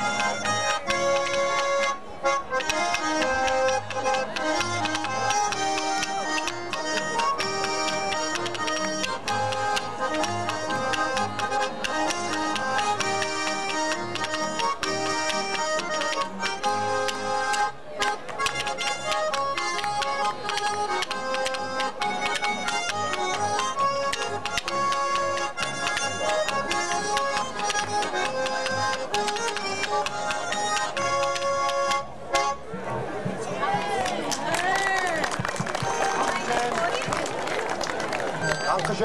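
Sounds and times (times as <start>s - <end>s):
button accordions playing polka: 0.0s - 32.7s, 35.6s - 37.2s, 37.8s - 39.0s
double bass oom-pah: 0.0s - 33.4s
guitar beat: 0.0s - 34.0s.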